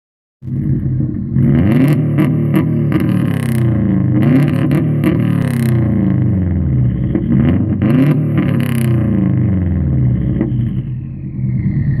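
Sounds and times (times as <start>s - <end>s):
car engine revving against limiter: 0.4s - 11.7s
turbo whine: 8.6s - 12.0s.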